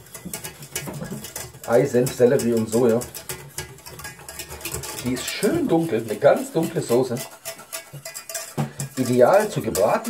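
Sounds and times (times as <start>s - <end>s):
utensil stirring in pot: 0.0s - 10.0s.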